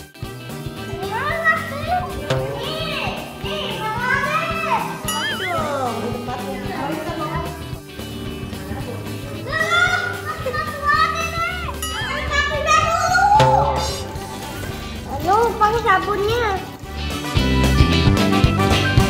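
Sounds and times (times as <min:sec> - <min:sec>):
background music: 0:00.0 - 0:19.0
children talking: 0:00.7 - 0:16.8.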